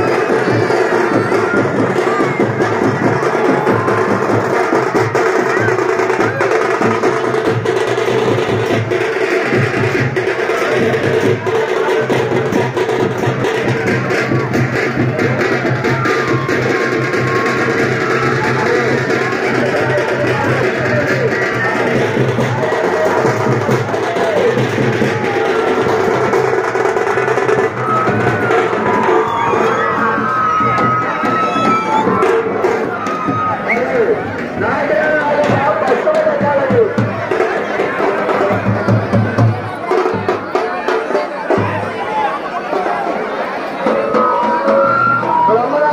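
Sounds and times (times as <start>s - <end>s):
crowd: 0.0s - 45.9s
percussion-led drum music: 0.0s - 45.9s.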